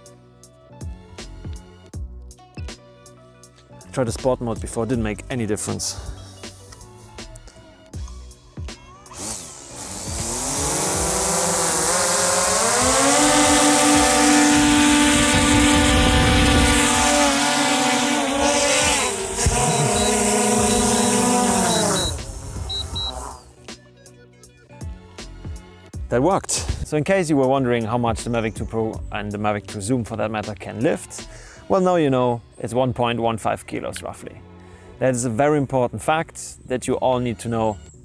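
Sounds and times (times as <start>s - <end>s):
drone motors whining: 9.1s - 23.6s
short high beeps: 19.6s - 23.2s.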